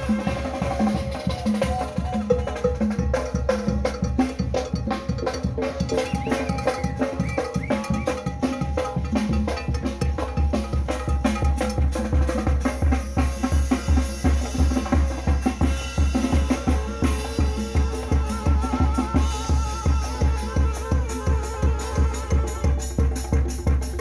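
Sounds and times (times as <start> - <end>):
bass drum beat: 0.0 - 24.0
snare drum: 0.0 - 24.0.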